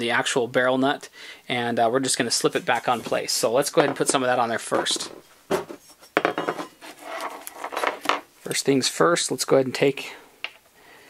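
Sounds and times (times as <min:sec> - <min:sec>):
tools rattling and clattering: 0:04.8 - 0:08.2.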